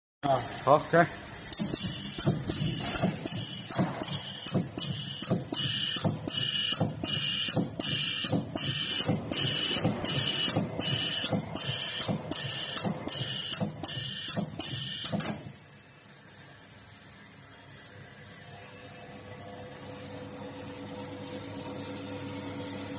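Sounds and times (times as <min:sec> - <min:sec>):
machine humming steadily: 0:00.2 - 0:22.9
welding machine hissing strokes: 0:01.5 - 0:15.2.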